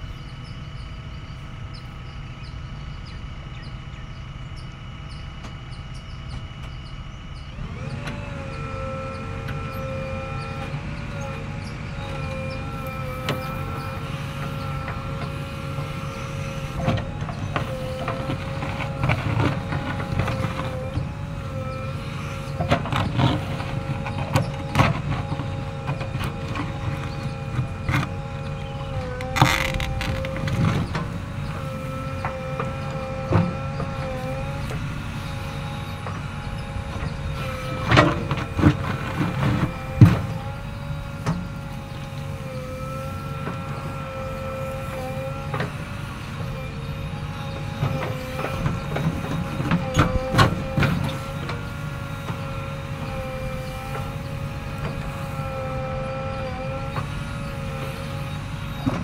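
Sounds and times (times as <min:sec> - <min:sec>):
backhoe engine and hydraulic whine: 0:00.0 - 0:59.0.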